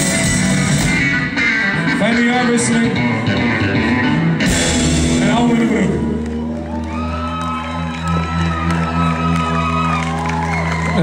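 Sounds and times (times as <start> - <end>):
rock band holding chord: 0.0 - 10.2
crowd cheering and whooping: 3.0 - 4.5, 5.5 - 11.0
held bass note: 3.3 - 7.0.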